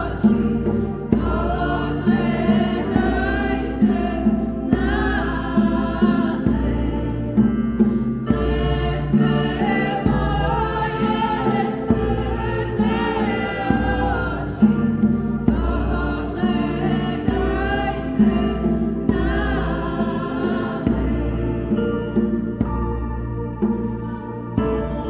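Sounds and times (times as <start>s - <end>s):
hand drum: 0.0s - 25.0s
keyboard: 0.0s - 25.0s
vocal ensemble singing folk song: 0.0s - 25.0s.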